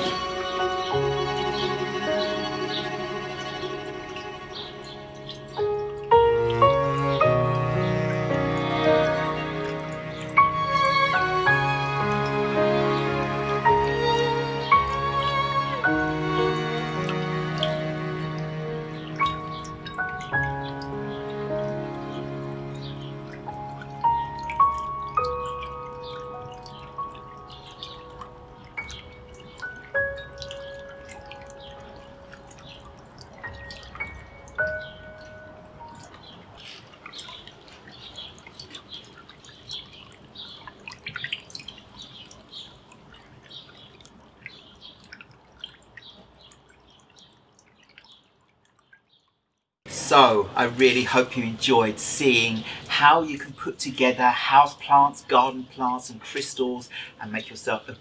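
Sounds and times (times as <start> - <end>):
sustained low drone: 0.0 - 5.4
soft new-age music: 0.0 - 48.1, 49.9 - 58.0
water drops dripping: 0.0 - 58.0.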